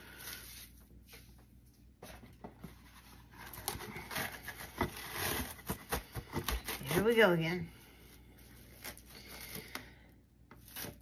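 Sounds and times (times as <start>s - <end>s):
cling wrap crackling and rustling: 2.7s - 9.9s.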